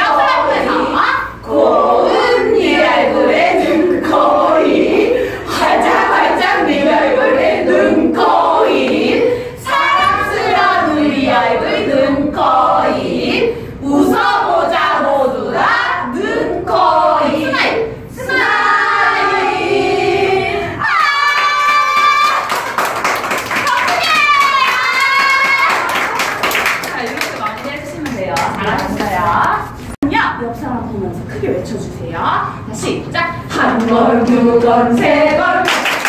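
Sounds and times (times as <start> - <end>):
women singing together: 0.0 - 22.9, 32.5 - 36.0
group clapping hands: 21.1 - 29.1, 35.6 - 36.0.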